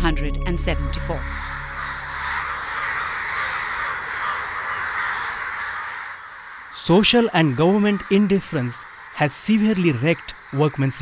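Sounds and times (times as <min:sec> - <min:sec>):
crows cawing: 0:01.2 - 0:11.0.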